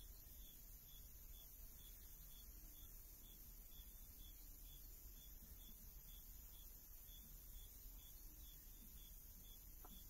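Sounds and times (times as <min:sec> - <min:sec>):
faint hiss and hum: 0:00.0 - 0:10.0.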